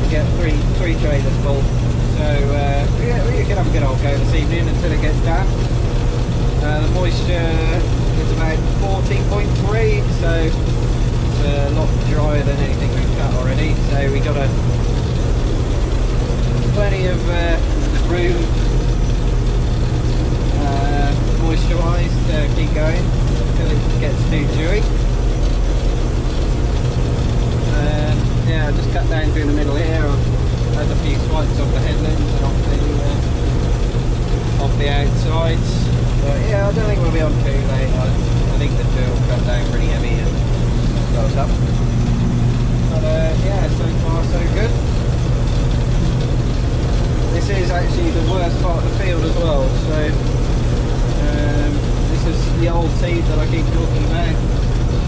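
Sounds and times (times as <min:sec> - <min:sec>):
combine harvester drone: 0:00.0 - 0:55.0.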